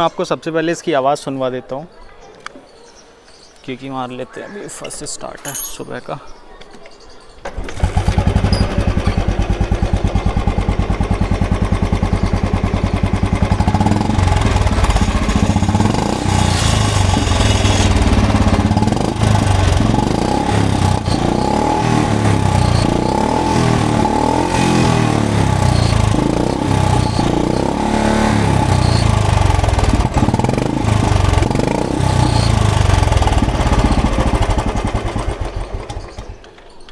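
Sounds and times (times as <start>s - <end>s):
motorcycle engine idling: 7.5s - 36.6s.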